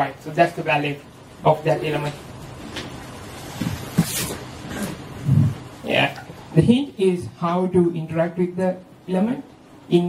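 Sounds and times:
low breathy throat sound: 3.6s - 5.6s.

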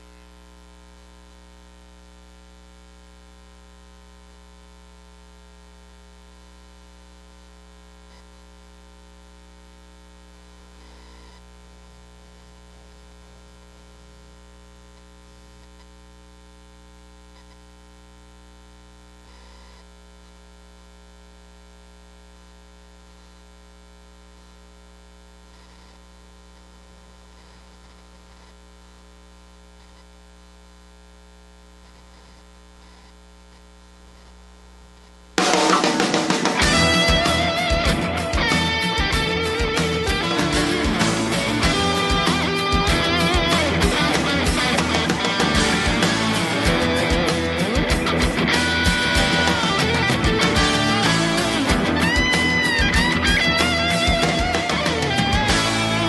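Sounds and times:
mains hum: 0.0s - 56.0s.

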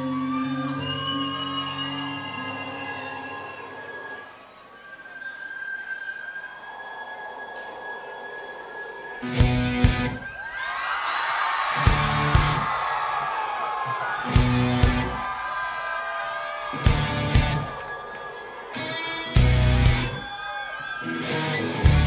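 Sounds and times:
crowd cheering: 0.0s - 22.0s
held electric guitar tone: 9.2s - 10.2s, 16.8s - 17.7s, 18.8s - 20.2s
live rock band playing: 9.3s - 10.2s, 14.4s - 15.1s, 19.3s - 20.2s, 21.2s - 22.0s.

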